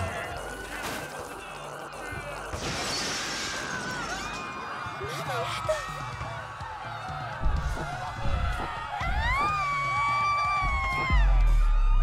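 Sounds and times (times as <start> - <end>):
glass shattering: 2.5 - 4.4.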